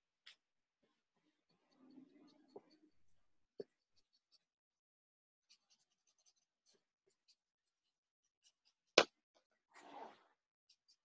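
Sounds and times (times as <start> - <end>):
drawing tool scratching on paper: 5.4 - 9.0.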